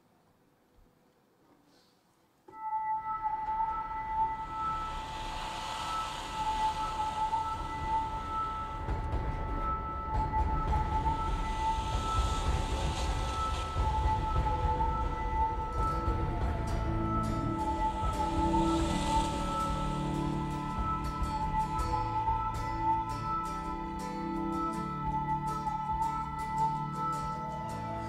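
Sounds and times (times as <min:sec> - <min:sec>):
held chord of high tones: 0:02.5 - 0:28.0.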